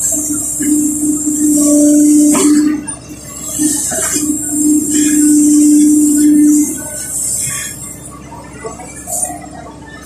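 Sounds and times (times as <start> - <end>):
diesel engine under load: 0.0 - 10.0
hydraulic whine: 0.0 - 10.0.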